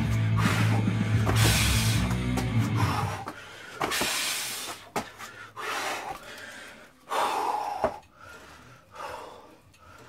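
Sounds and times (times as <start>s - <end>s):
man breathing hard: 0.0s - 10.0s.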